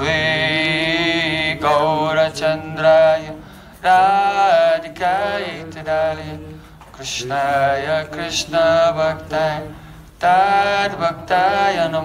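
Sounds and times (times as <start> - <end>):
man chanting prayers: 0.0 - 12.0.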